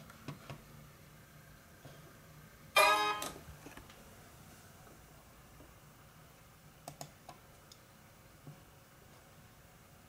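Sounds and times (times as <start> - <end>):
computer system chime: 2.8 - 3.4.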